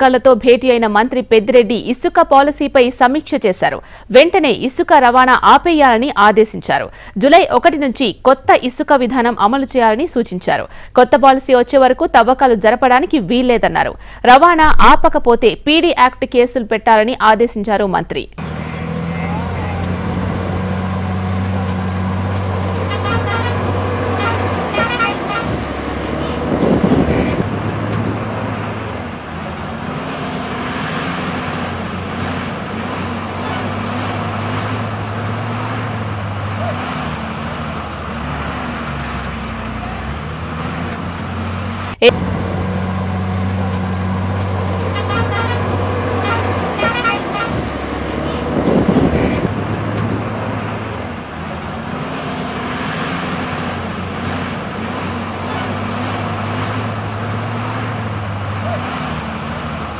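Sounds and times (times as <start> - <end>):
diesel engines droning: 0.0 - 17.4, 18.1 - 59.9.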